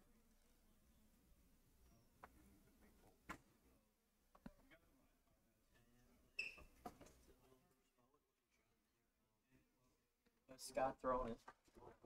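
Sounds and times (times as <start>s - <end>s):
brief high squeak: 6.4s - 6.8s.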